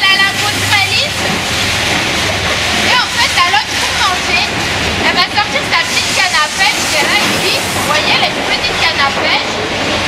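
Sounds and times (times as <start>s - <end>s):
steady rushing hall noise: 0.0s - 10.0s.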